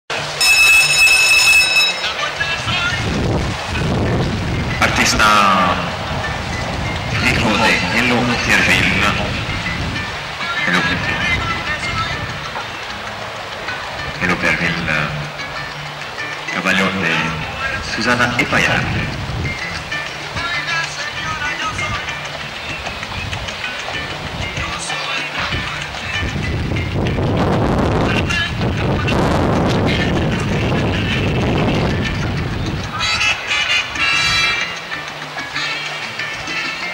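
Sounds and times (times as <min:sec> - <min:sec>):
background music: 0:00.1 - 0:36.9
electronic buzzer tone: 0:00.4 - 0:02.1.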